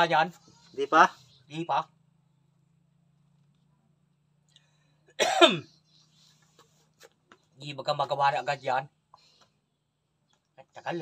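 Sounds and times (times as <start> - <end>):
man coughing: 5.2 - 5.7.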